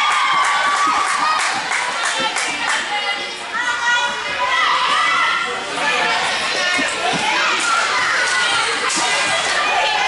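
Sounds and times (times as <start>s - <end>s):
girls calling out and chattering: 0.0s - 10.0s.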